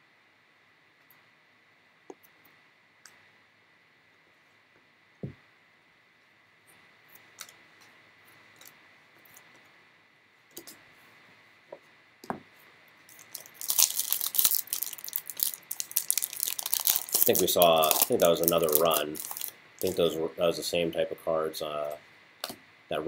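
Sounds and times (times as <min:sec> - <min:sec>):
foil wrapper crinkling: 0:13.1 - 0:20.1
trading cards handled by hand: 0:13.1 - 0:20.1.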